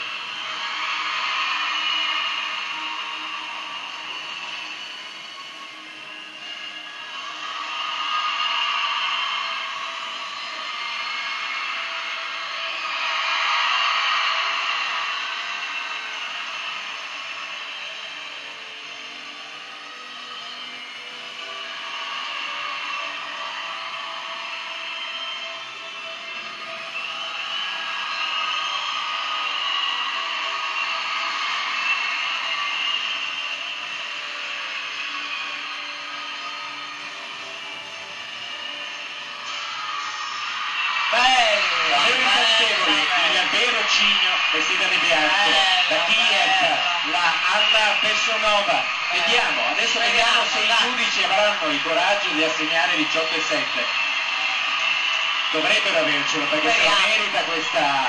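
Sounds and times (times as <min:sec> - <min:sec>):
gymnastics music on television: 0:00.0 - 0:58.0.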